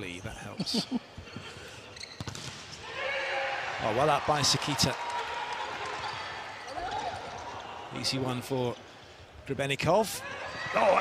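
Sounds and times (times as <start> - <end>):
arena crowd noise: 2.8 - 11.0.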